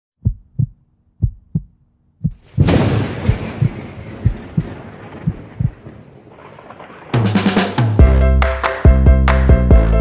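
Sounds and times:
heartbeat thumps: 0.2s - 5.8s.

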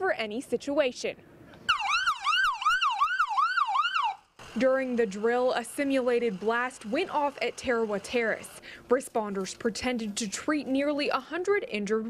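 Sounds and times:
ambulance siren yelp: 1.7s - 4.2s.

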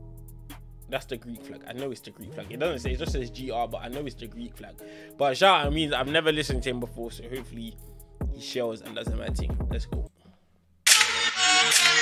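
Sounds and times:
loud music: 1.8s - 4.2s, 10.9s - 12.0s.

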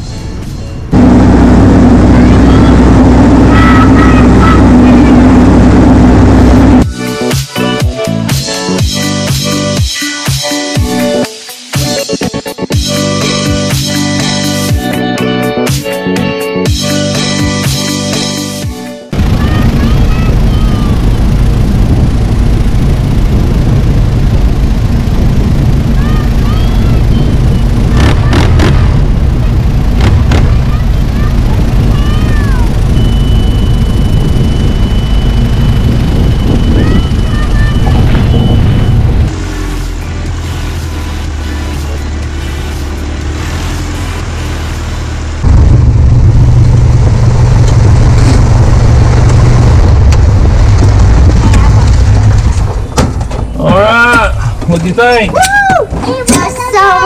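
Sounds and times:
wind rush: 19.2s - 39.3s, 45.4s - 53.0s
steady high tone: 19.2s - 40.7s
light aircraft engine droning: 19.2s - 53.6s.

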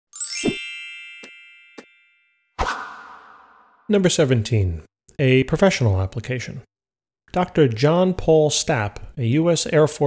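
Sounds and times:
bright chime sweeping up: 0.1s - 3.6s.

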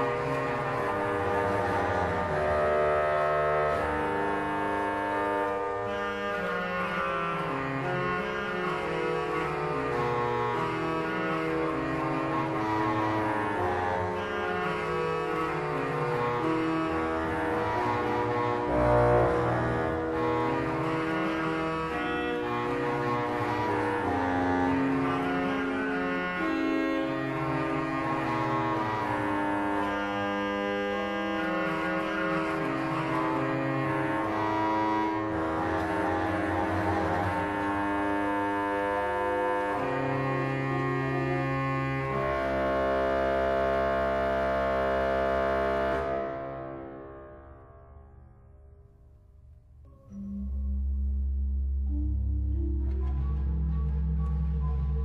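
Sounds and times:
pipe organ playing held chords: 0.1s - 47.0s, 50.1s - 55.0s.

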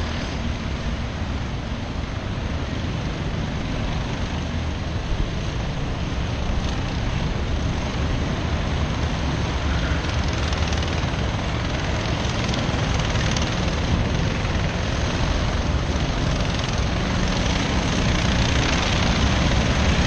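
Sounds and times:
distant kart engines buzzing: 0.0s - 20.0s.

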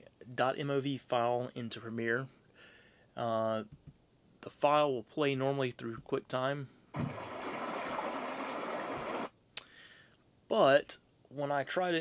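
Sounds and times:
stream running over rocks: 7.0s - 9.3s.

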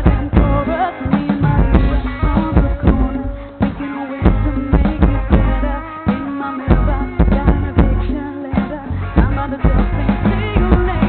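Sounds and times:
drum kit: 0.0s - 11.0s
heavy bass: 0.0s - 11.0s
person singing into microphone: 0.0s - 11.0s.

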